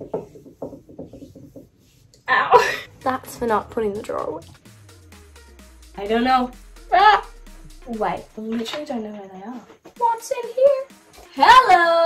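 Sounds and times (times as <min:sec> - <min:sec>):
hand rubbing skin: 0:00.0 - 0:02.3.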